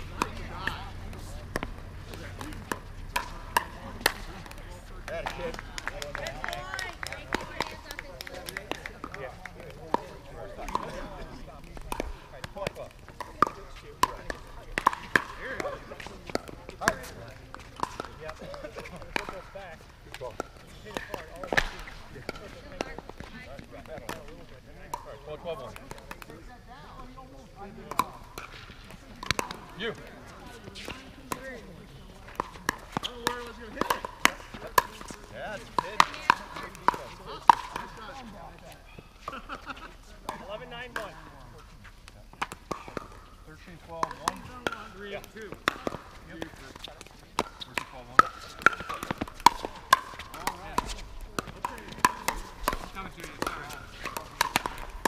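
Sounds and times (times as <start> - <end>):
paddles hitting plastic ball: 0.0 - 26.4, 27.8 - 41.2, 42.0 - 55.0.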